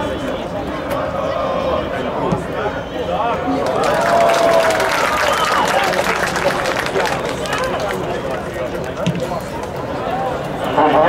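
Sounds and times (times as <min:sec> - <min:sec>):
crowd murmur: 0:00.0 - 0:11.0
players shouting: 0:03.4 - 0:09.2.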